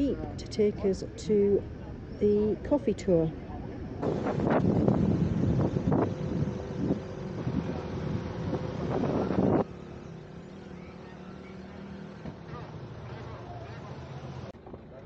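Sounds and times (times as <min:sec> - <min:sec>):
voices: 0:00.0 - 0:15.0
wind on microphone: 0:04.0 - 0:09.7.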